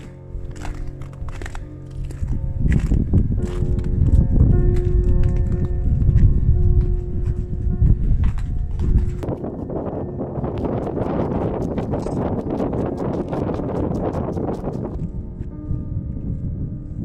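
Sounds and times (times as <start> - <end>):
footsteps crunching in snow: 0.0 - 15.6
soft background music: 0.0 - 17.0
wind rumble on microphone: 0.0 - 17.0.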